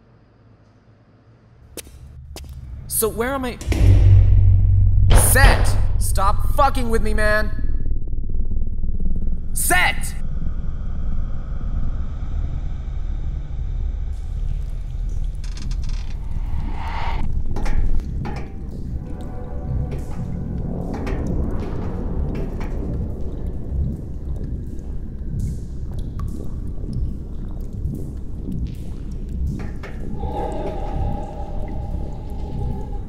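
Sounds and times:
deep steady rumble: 2.0 - 9.6, 10.2 - 33.0.

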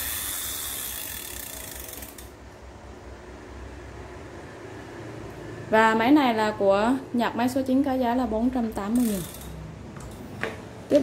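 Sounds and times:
fishing reel gears whirring: 0.0 - 2.4, 8.9 - 9.6.

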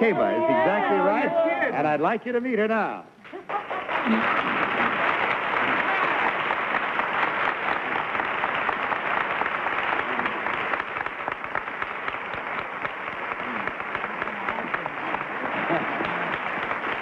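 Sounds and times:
audience applauding: 3.2 - 17.0.

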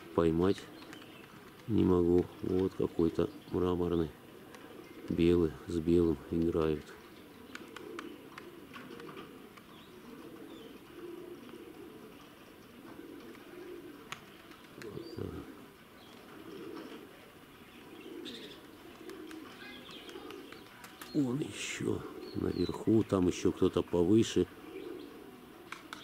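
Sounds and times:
pigeons cooing: 0.0 - 26.0.

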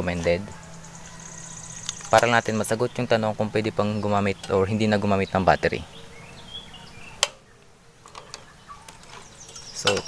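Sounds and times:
faint high chirps: 0.0 - 3.1
faint steady hum: 0.0 - 10.0.

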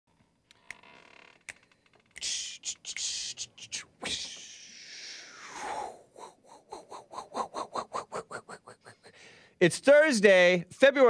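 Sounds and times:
low hiss: 0.6 - 6.2.

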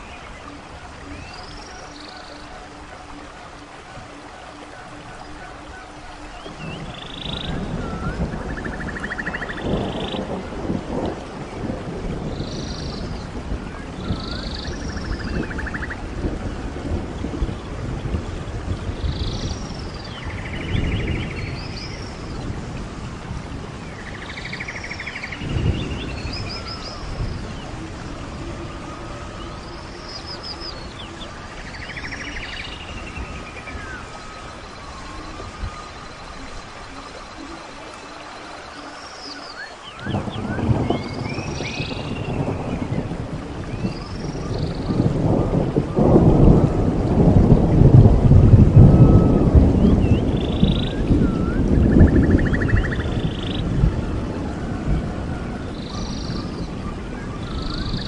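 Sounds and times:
birds calling: 0.0 - 11.7, 23.9 - 46.6
rain hissing: 0.0 - 58.0
thunder rumbling: 0.0 - 58.0.

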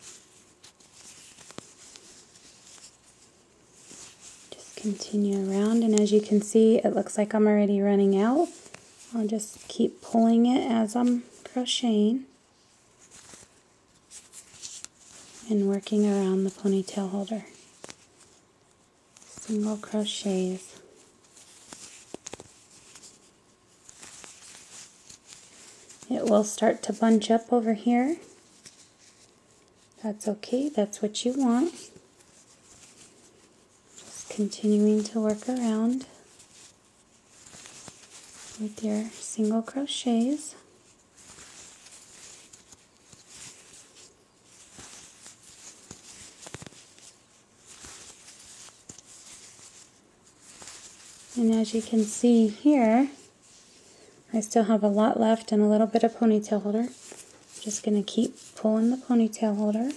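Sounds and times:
rustling of yarn: 0.0 - 59.9
crochet hook clicking and scratching: 0.1 - 3.0, 21.4 - 23.2.

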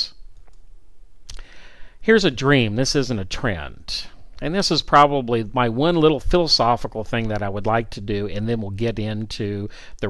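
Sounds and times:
soft hiss: 0.0 - 10.0
person speaking: 2.0 - 10.0.

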